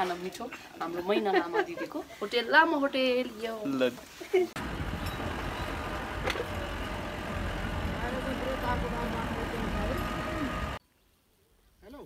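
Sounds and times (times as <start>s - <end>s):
wind buffeting microphone: 4.6s - 10.8s.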